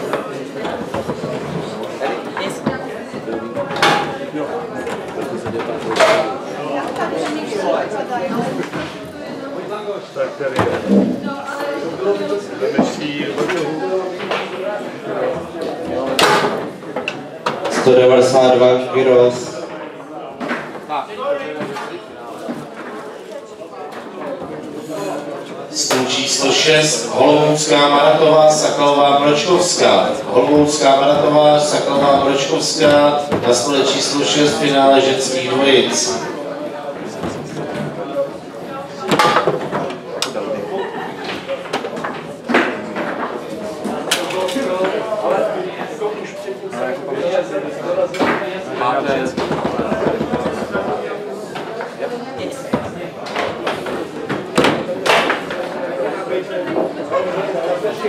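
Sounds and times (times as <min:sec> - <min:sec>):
background chatter: 0:00.0 - 0:58.0
people talking in a large hall: 0:00.0 - 0:58.0
foosball knocks and clacks: 0:49.1 - 0:51.7.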